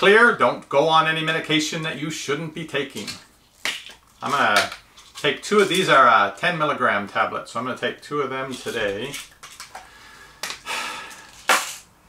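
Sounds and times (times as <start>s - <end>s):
pill bottle being handled: 8.5s - 11.8s.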